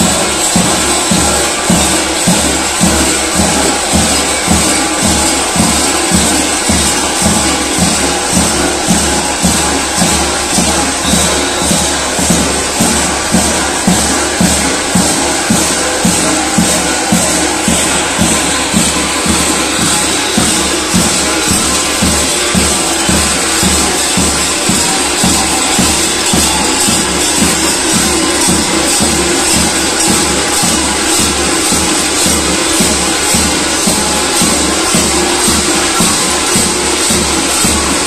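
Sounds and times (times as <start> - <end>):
bells clanging: 0.0 - 38.0
large drum beating: 0.0 - 38.0.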